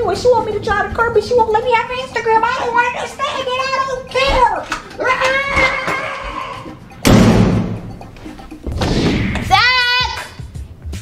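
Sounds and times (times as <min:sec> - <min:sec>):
interior door slamming: 0:04.2 - 0:04.9, 0:07.0 - 0:08.0.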